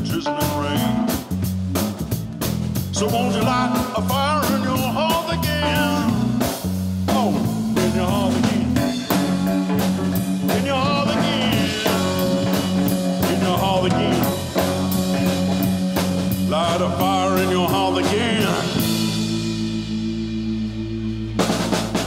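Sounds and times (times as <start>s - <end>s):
person singing: 0.0s - 1.3s, 3.0s - 6.5s, 7.1s - 9.5s, 10.4s - 21.5s
live rock band playing: 0.0s - 22.0s.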